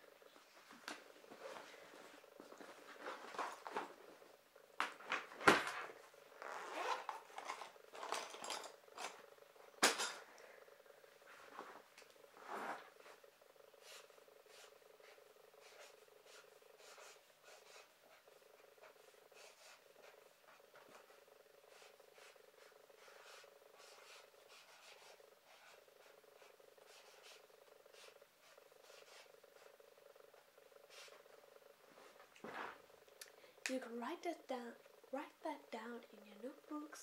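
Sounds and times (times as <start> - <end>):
steady low hum: 0.0 - 37.0
marker scratching on paper: 23.0 - 29.3.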